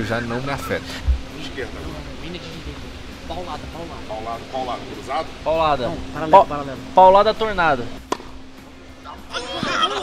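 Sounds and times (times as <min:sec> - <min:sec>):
tennis racket hitting ball: 0:08.0 - 0:08.4.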